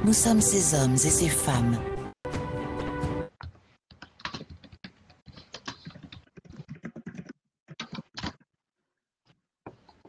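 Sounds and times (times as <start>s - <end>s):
computer keyboard typing: 3.4s - 8.4s.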